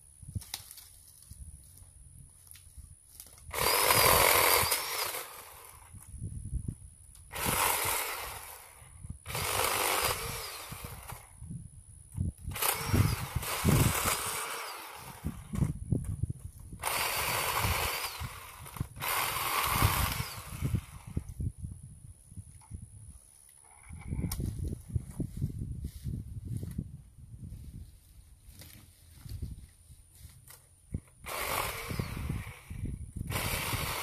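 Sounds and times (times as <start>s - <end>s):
power saw cutting branches: 3.4s - 6.0s, 7.3s - 11.4s, 12.5s - 15.8s, 16.7s - 21.3s, 30.4s - 34.0s.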